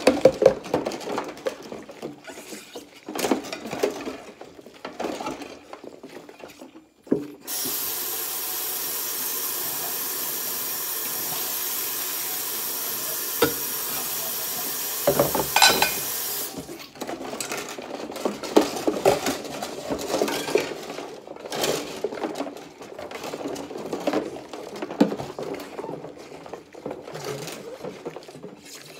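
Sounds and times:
faucet running into sink: 7.5 - 16.6
plates scrubbed with sponge: 13.4 - 13.8, 15.1 - 16.2.

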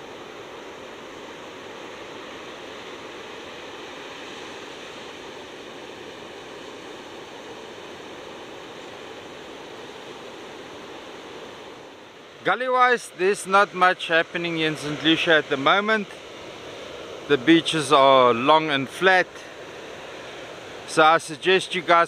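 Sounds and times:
ocean surf breaking: 0.0 - 22.0.

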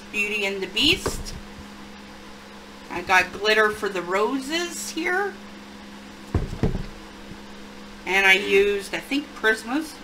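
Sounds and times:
steady low hum: 0.0 - 10.0
book thumping on table: 6.3 - 7.0.

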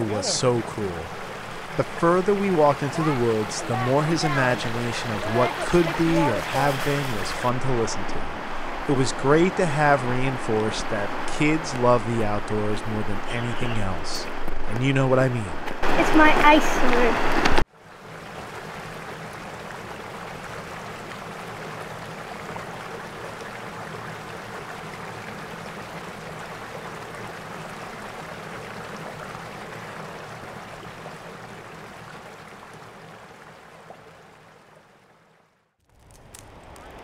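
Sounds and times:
stream rushing: 0.0 - 37.0.

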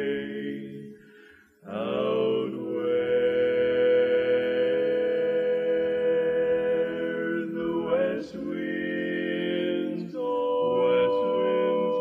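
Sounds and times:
barbershop quartet singing harmony: 0.0 - 12.0.

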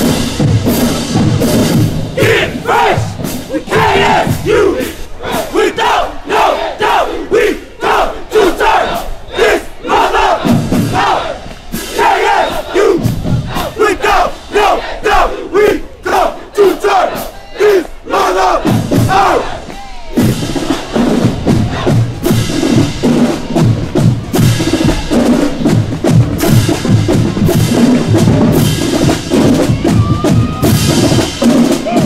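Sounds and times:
group chanting and shouting: 0.7 - 23.6, 29.3 - 32.0.

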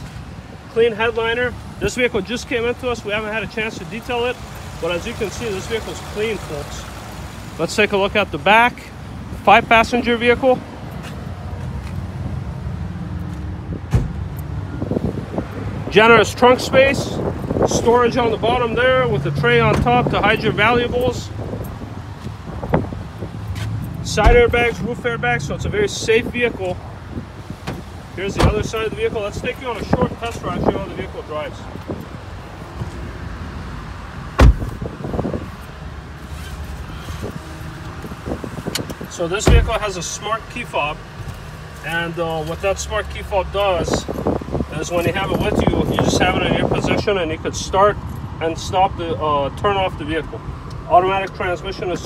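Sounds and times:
car door thumping shut: 13.9 - 14.2, 24.2 - 24.6, 27.6 - 28.7, 34.4 - 34.9, 39.4 - 39.8.

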